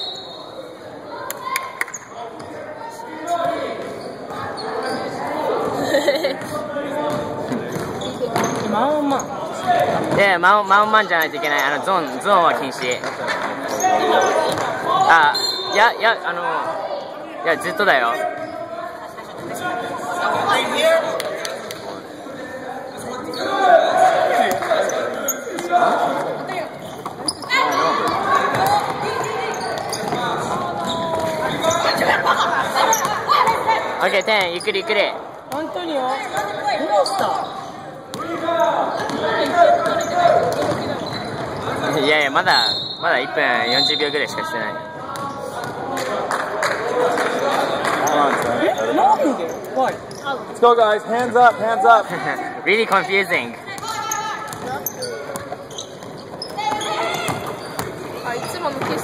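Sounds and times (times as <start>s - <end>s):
voices echoing: 0.0s - 59.0s
basketball bouncing on wooden court: 28.5s - 30.2s, 53.8s - 59.0s.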